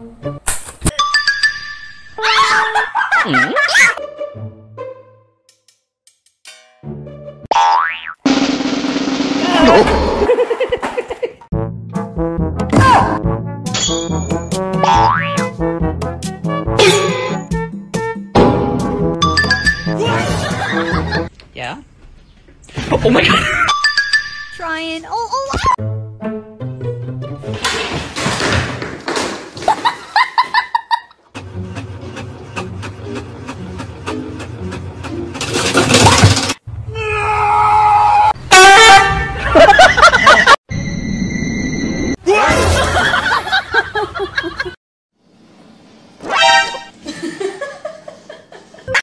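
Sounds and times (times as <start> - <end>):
background music: 0.0 - 7.6, 11.5 - 21.3, 25.8 - 27.9
cartoon boing glide: 7.5 - 8.5, 14.8 - 15.4, 46.3 - 46.9
household objects crashing to floor: 27.5 - 30.3, 35.4 - 36.6.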